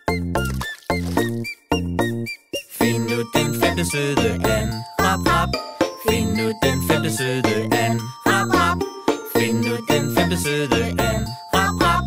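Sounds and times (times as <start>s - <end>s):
children's song music: 0.1s - 12.0s.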